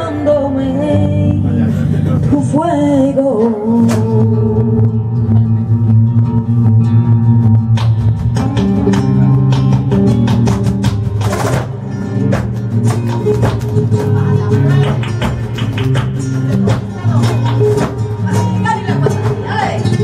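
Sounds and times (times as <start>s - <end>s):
flamenco guitar playing: 0.0s - 20.0s
sharp percussive strikes: 7.7s - 20.0s.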